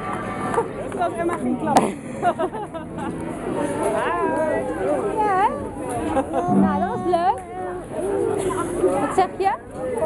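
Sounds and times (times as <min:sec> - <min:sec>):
children chattering and calling: 0:00.0 - 0:10.0
steady low note: 0:06.5 - 0:07.8.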